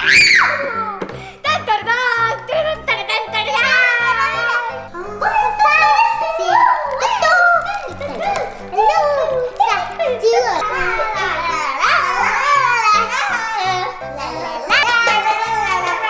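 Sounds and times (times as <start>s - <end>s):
girls shouting and laughing: 0.0s - 16.0s.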